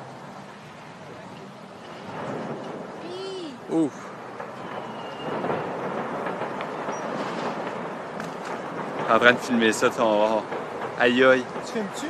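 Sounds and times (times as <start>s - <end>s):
distant rumbling: 0.0s - 12.0s.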